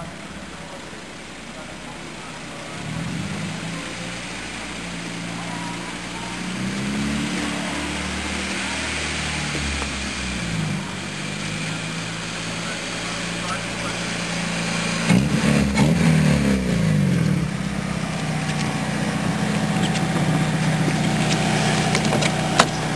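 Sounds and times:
car engine revving: 0.0 - 22.9.

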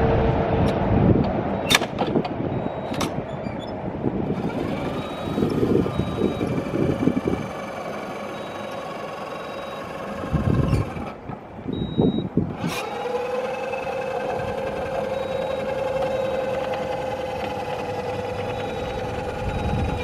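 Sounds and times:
electric motor whining: 1.6 - 20.0.

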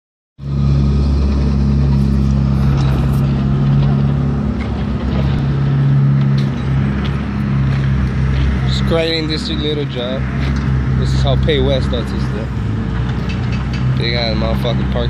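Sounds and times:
heavy diesel engine droning: 0.4 - 15.0.

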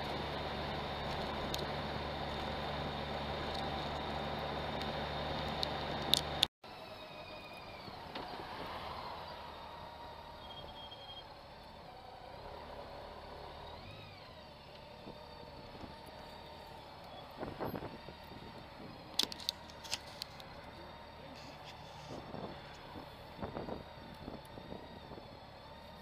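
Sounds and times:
tyres crackling on gravel: 0.0 - 6.5, 15.9 - 23.0
motorcycle engine and road hum: 0.0 - 26.0.

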